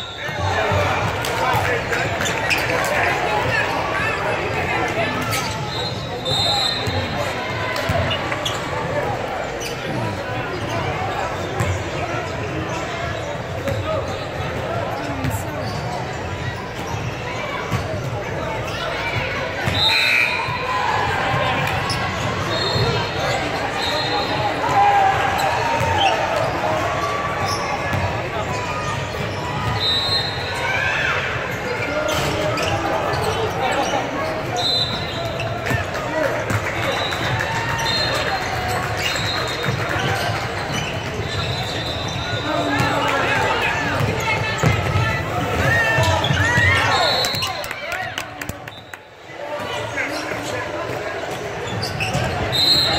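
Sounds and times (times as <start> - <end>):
echoing voices in hall: 0.0 - 52.9.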